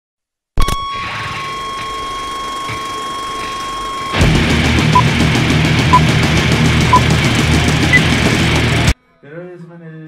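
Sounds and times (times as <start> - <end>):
steady high-pitched tone: 0.9 - 9.2.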